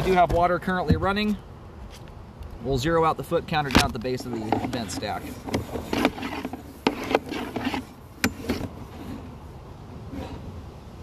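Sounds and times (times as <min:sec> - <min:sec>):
cable scraping inside a pipe: 0:04.2 - 0:09.4, 0:10.0 - 0:10.6.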